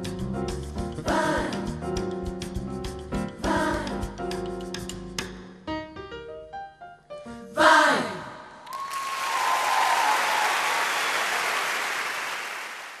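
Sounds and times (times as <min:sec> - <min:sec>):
choir singing closing chord: 0:07.5 - 0:08.6
crowd cheering: 0:08.6 - 0:13.0
audience applause: 0:08.7 - 0:13.0.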